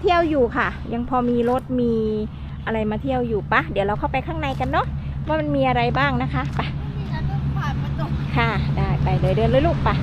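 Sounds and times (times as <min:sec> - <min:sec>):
woman speaking: 0:00.0 - 0:06.8, 0:07.8 - 0:10.0
low hum: 0:00.0 - 0:10.0.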